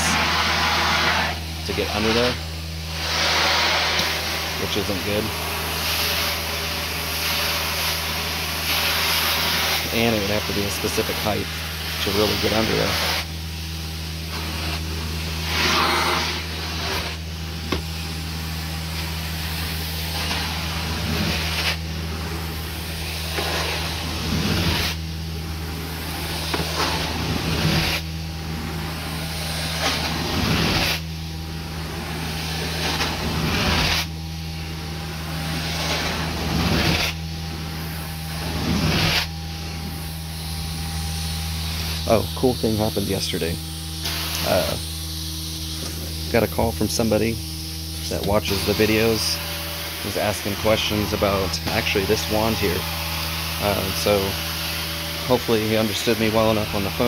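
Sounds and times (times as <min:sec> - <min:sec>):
hiss of suction and spray: 0:00.0 - 0:13.3, 0:15.4 - 0:17.2
low machine drone: 0:09.8 - 0:57.0.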